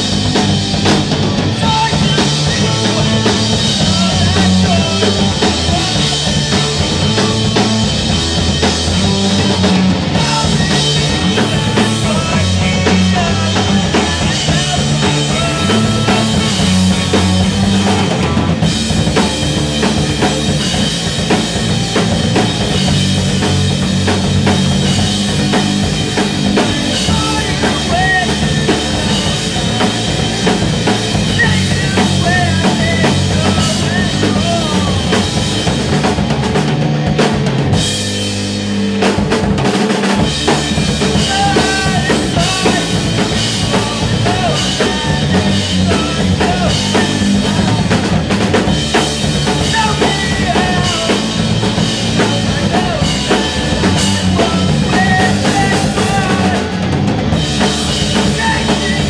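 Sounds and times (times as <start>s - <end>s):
bass drum and snare beat: 0.0s - 59.0s
electric guitars: 0.0s - 59.0s
live rock band playing: 0.0s - 59.0s.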